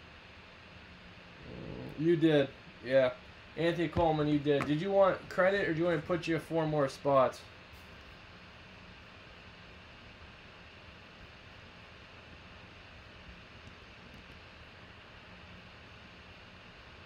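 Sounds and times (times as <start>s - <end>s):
faint low hum: 0.0s - 17.0s.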